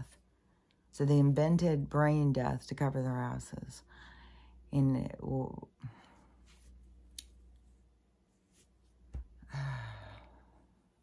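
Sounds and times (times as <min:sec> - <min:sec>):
woman sighing: 0:09.4 - 0:10.5.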